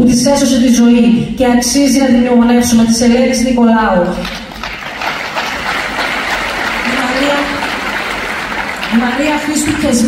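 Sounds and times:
audience applauding: 0:04.2 - 0:10.0.

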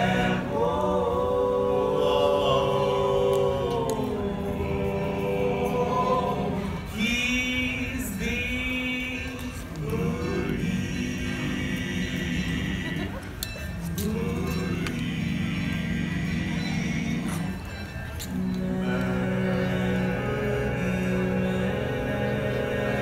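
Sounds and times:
barbershop quartet singing: 0:00.0 - 0:23.0.

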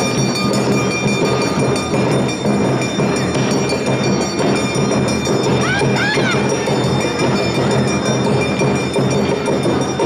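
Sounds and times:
high ringing tones: 0:00.0 - 0:10.0
taiko drums beating: 0:00.0 - 0:10.0.

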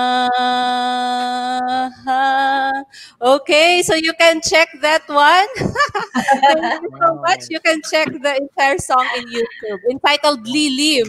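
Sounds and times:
woman singing unaccompanied: 0:00.0 - 0:05.3.

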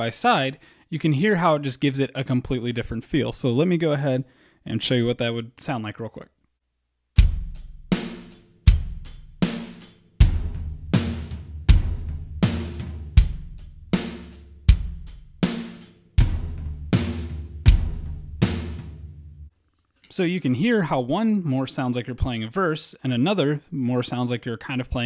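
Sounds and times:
kick drum: 0:07.2 - 0:07.9, 0:10.2 - 0:13.7, 0:14.7 - 0:15.4, 0:16.2 - 0:18.6
snare drum: 0:07.2 - 0:19.0.

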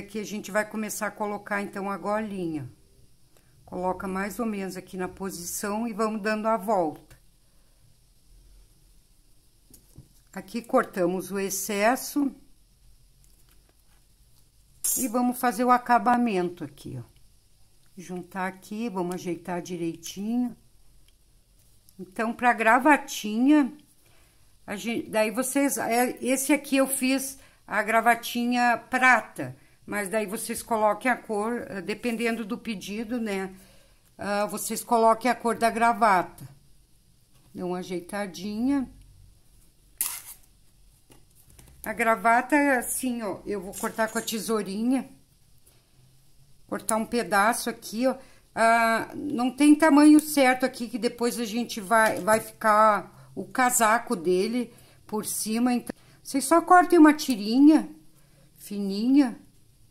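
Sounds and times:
woman speaking: 0:00.0 - 0:02.8, 0:03.7 - 0:07.2, 0:10.3 - 0:12.5, 0:14.8 - 0:17.2, 0:18.0 - 0:20.6, 0:22.0 - 0:23.8, 0:24.6 - 0:36.6, 0:37.5 - 0:39.0, 0:41.8 - 0:45.2, 0:46.7 - 0:58.0, 0:58.6 - 0:59.5.

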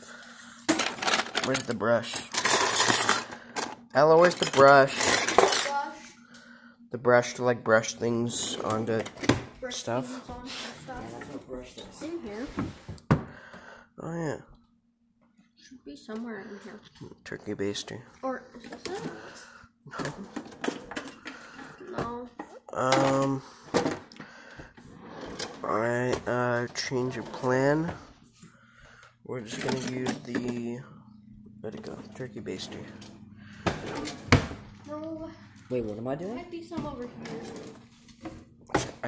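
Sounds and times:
cutlery clattering in drawer tray: 0:00.7 - 0:03.4, 0:04.2 - 0:05.8.

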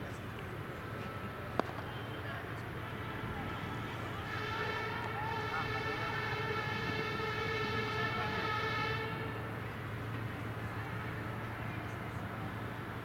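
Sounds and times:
distant horn: 0:02.9 - 0:09.6.

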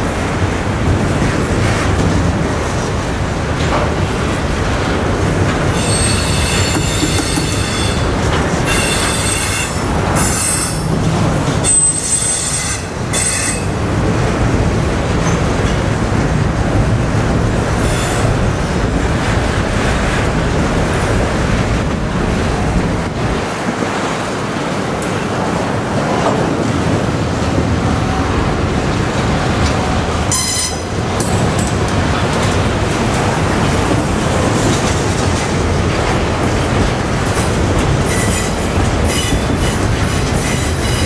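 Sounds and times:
train wheels rumbling on rail: 0:00.0 - 0:41.0.

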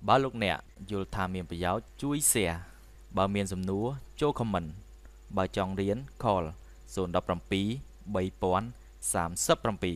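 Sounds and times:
man talking: 0:00.0 - 0:09.9.

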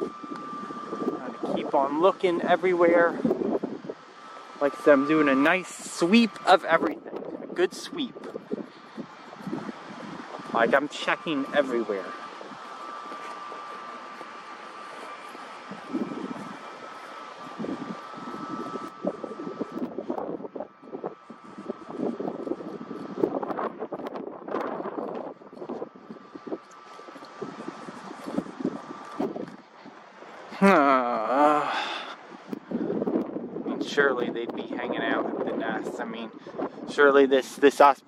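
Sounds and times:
wind on microphone: 0:00.0 - 0:38.0
faint steady high tone: 0:04.1 - 0:22.9.

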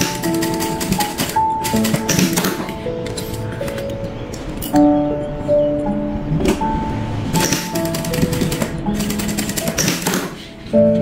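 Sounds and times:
sewing machine clatter: 0:00.0 - 0:02.6
background music: 0:00.0 - 0:11.0.

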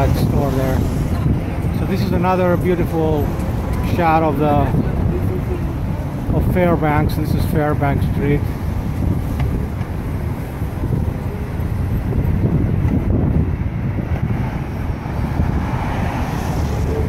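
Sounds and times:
traffic rumble: 0:00.0 - 0:17.0
wind buffeting the microphone: 0:00.0 - 0:17.0.

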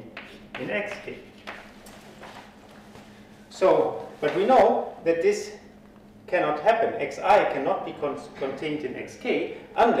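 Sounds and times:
faint room hum: 0:00.0 - 0:10.0
chalk tapping and scraping: 0:00.1 - 0:01.7.

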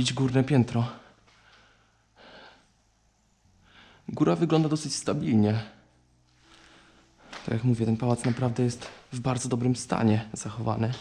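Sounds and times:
man breathing: 0:01.0 - 0:02.8, 0:03.5 - 0:04.1, 0:06.4 - 0:07.5.

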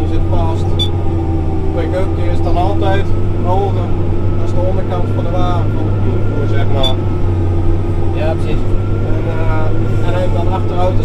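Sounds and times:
tractor engine droning: 0:00.0 - 0:11.0
voices talking: 0:00.0 - 0:11.0.

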